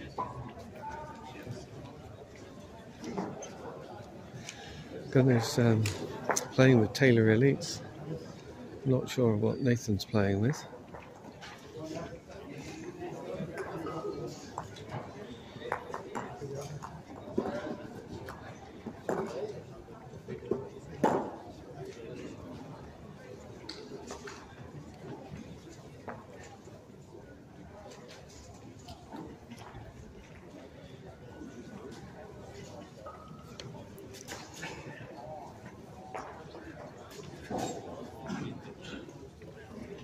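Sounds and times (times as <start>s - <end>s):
people talking: 0.0s - 8.2s, 8.8s - 10.7s
people talking indoors: 0.0s - 40.0s.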